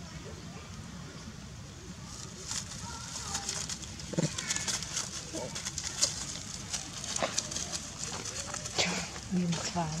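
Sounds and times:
dry leaves crackling underfoot: 1.9s - 10.0s.

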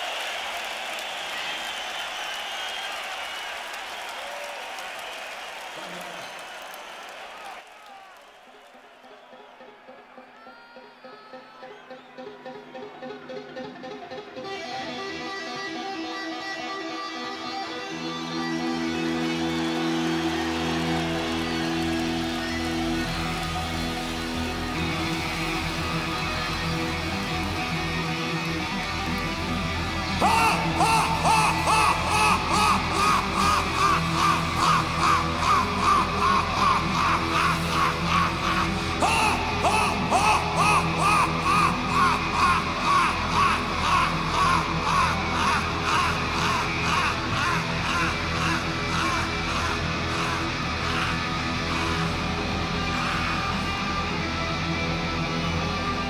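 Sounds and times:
electric rock guitar playing: 12.2s - 56.0s.

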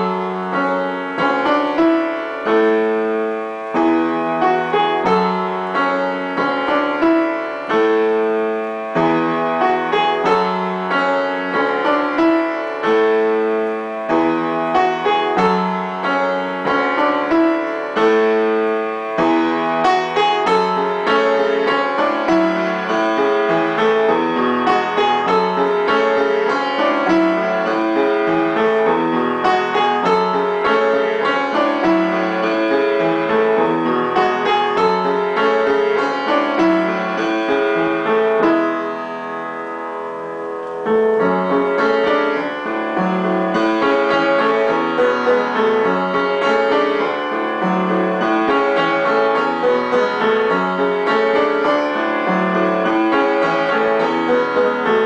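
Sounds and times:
upright piano playing chords: 0.0s - 55.0s.

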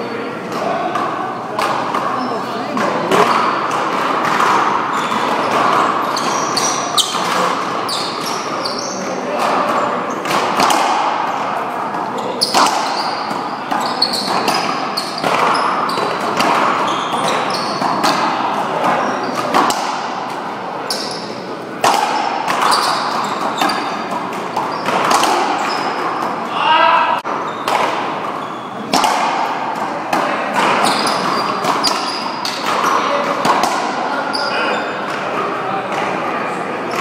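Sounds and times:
racquets striking ball: 0.4s - 36.3s
ball smacking wall and floor: 9.3s - 21.2s, 21.8s - 26.4s, 27.5s - 34.1s.

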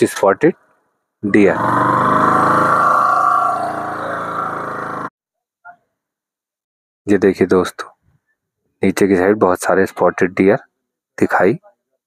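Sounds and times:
motorcycle engine running: 1.3s - 5.1s.

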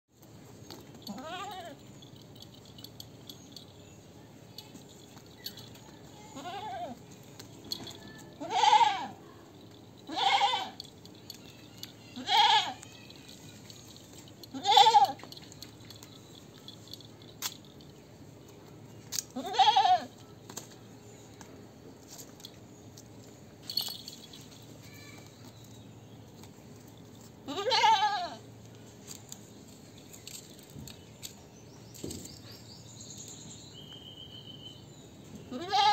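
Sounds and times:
goat bleating: 1.1s - 1.8s, 6.3s - 7.0s, 8.4s - 9.2s, 10.1s - 10.8s, 12.2s - 12.9s, 14.5s - 15.2s, 19.4s - 20.1s, 27.4s - 28.4s, 35.5s - 35.9s.

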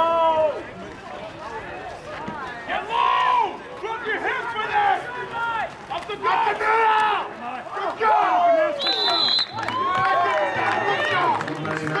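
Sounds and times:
people shouting and talking: 0.0s - 12.0s.

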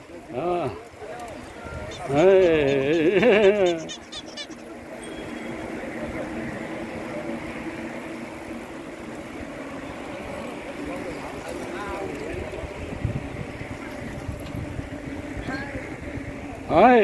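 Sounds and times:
bicycles rolling past: 0.0s - 17.0s
cyclists chatting: 0.0s - 17.0s.

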